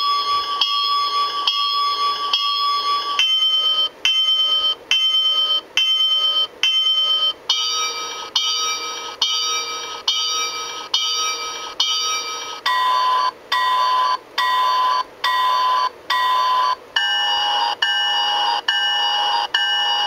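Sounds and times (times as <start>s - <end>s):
locomotive bell ringing: 0.0s - 12.8s.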